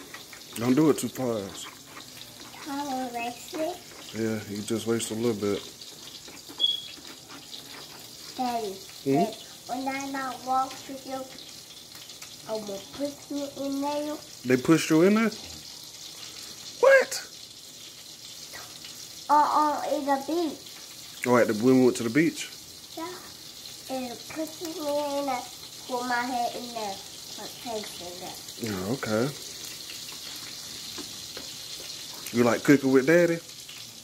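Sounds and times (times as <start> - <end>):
food sizzling in a pan: 0.0 - 34.0
child high-pitched vocal sound: 2.5 - 3.9, 19.3 - 20.6
child talking: 2.5 - 4.1, 8.3 - 11.4, 12.4 - 14.4, 19.3 - 20.7, 23.0 - 28.5.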